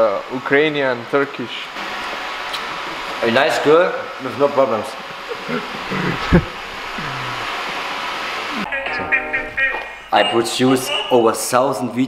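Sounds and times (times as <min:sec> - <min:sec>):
person speaking: 0:07.0 - 0:07.5, 0:08.6 - 0:12.0.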